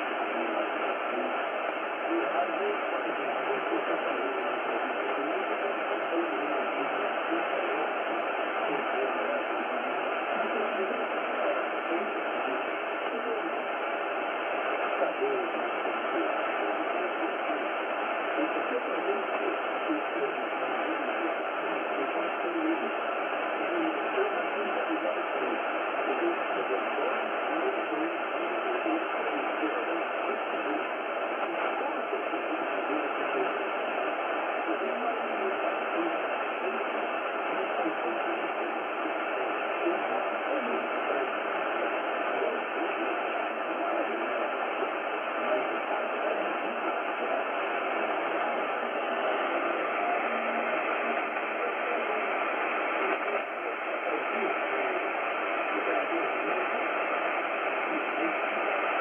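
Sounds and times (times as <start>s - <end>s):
faint radio voice: 0.0s - 59.0s
radio hiss and static: 0.0s - 59.0s.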